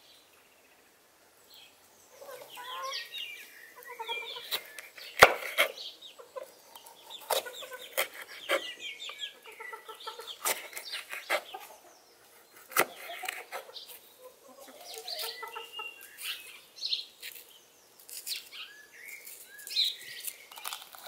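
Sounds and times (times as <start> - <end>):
chickens clucking: 2.1 - 16.7
knife slicing on wooden board: 4.5 - 5.8, 7.1 - 8.7, 12.6 - 13.7.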